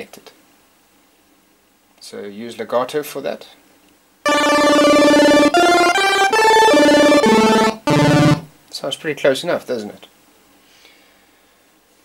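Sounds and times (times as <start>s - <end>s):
synth chiptune arpeggio: 4.3s - 8.5s.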